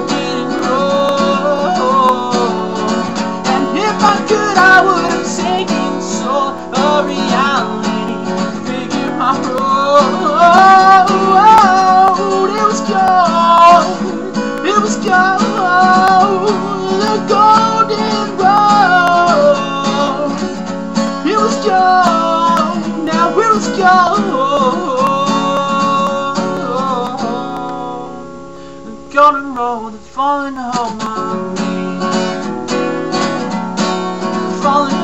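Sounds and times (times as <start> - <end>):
man singing: 0.0 - 32.4, 34.2 - 35.0
acoustic guitar strumming: 0.0 - 35.0.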